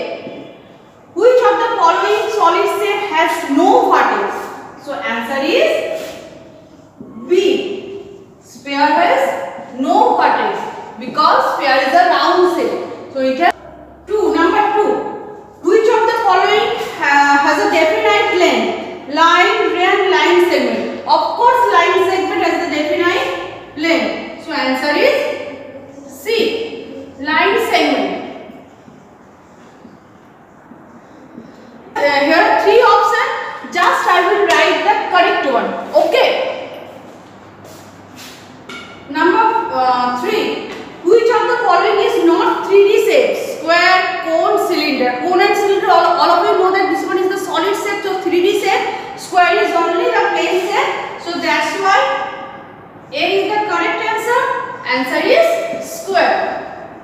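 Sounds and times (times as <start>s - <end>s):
woman speaking: 0.0s - 6.2s, 7.0s - 28.7s, 31.4s - 36.9s, 38.7s - 57.0s.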